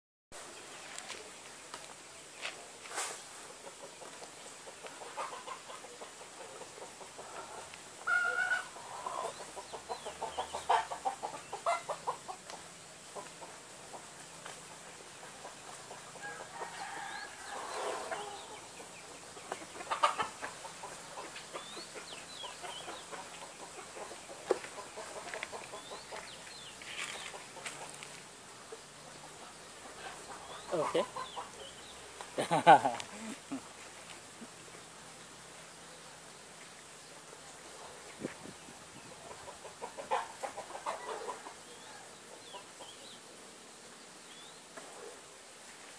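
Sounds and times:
faint outdoor hiss: 0:00.3 - 0:45.9.

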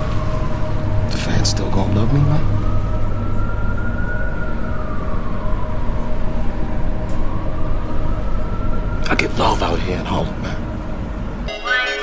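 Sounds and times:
low rumble of city traffic: 0:00.0 - 0:11.5
emergency siren wailing: 0:00.0 - 0:12.0.

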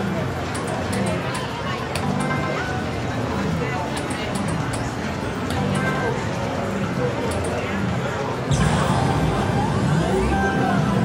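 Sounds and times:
slot machine electronic spin sounds: 0:02.0 - 0:07.6.

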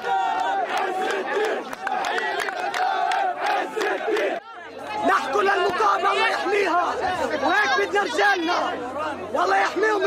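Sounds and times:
large crowd shouting: 0:00.0 - 0:10.0.

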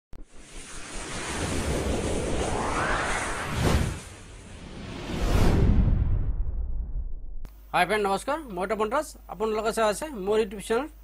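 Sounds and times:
rushing whoosh: 0:00.2 - 0:07.4.

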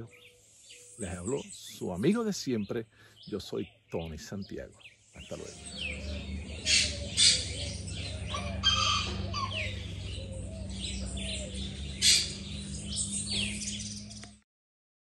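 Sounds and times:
birds chirping and calling: 0:00.0 - 0:14.4
low steady hum: 0:05.2 - 0:14.3.

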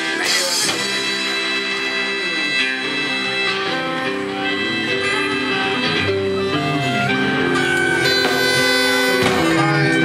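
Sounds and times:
drums: 0:00.0 - 0:10.0
electric guitar: 0:00.0 - 0:10.0
harmonium and reeds held notes: 0:00.0 - 0:10.0
live band playing: 0:00.0 - 0:10.0.

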